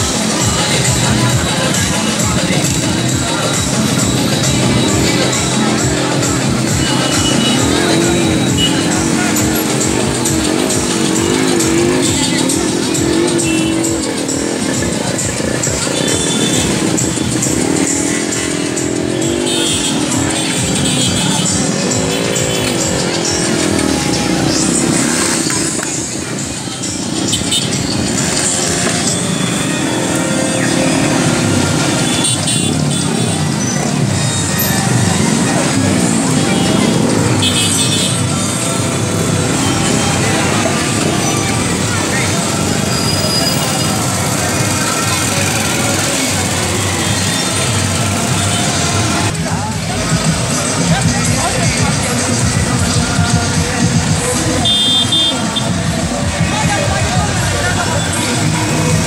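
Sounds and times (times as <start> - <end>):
motorcycle and car engines running: 0.0 - 59.0
music: 0.0 - 59.0
voices: 0.0 - 59.0.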